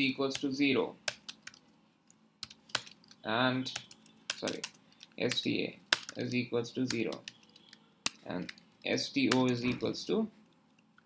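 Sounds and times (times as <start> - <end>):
typing on computer keyboard: 2.4 - 5.2.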